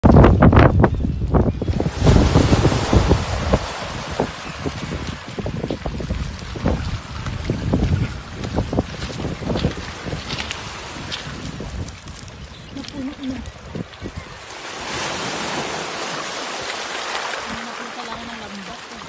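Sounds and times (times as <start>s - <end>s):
wind buffeting microphone: 0.0s - 19.0s
waves washing over pebbles: 1.7s - 19.0s.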